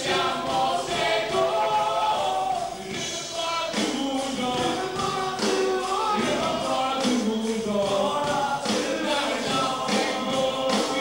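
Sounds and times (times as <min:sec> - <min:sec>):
crowd singing together: 0:00.0 - 0:11.0.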